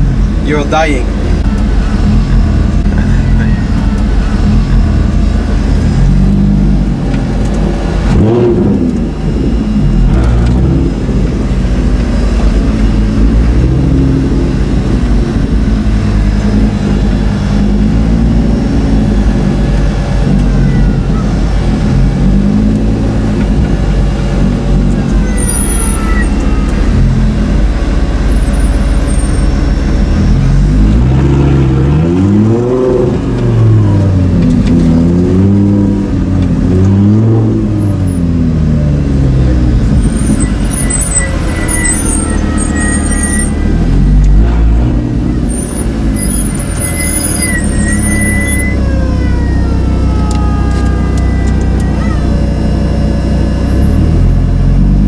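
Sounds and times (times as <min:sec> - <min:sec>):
race car engine revving: 0:00.0 - 0:55.0.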